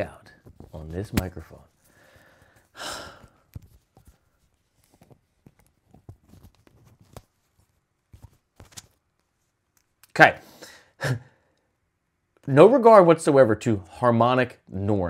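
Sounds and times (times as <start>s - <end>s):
microphone handling clicks and rubs: 0.3s - 1.9s, 3.4s - 9.9s.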